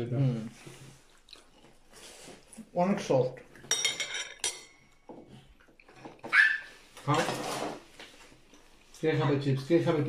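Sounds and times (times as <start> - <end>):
high-pitched cry: 6.3 - 6.8.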